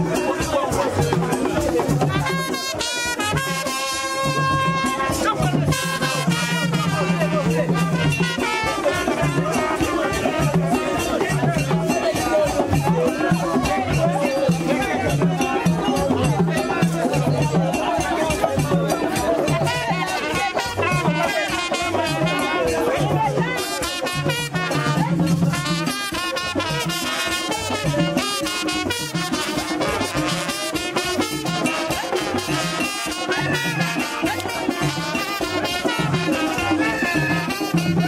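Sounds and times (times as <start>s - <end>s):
crowd singing together: 0.0s - 2.2s, 8.6s - 23.6s, 31.2s - 38.0s.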